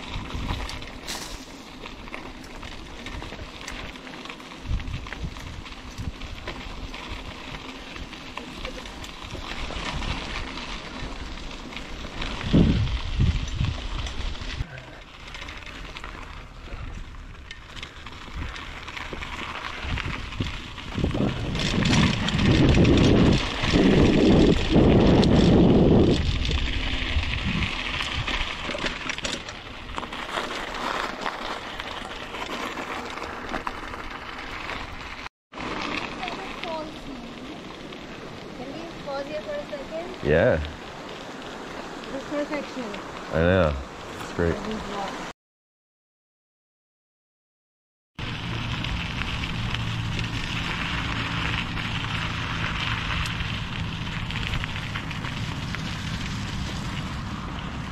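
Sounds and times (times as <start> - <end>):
wind buffeting microphone: 0.0 - 0.9, 4.6 - 8.2, 12.1 - 14.7, 19.8 - 28.6
bike rattle: 0.0 - 40.0, 48.2 - 57.9
bike tyres rolling on dirt: 0.0 - 45.3, 48.2 - 57.9.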